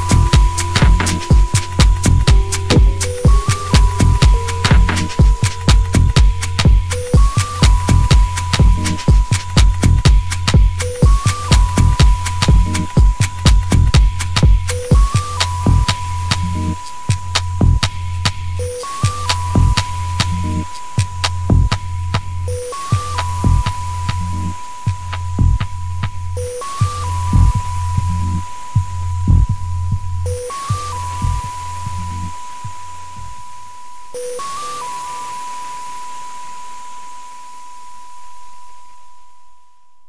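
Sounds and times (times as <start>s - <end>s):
electronic dance music: 0.0s - 28.9s.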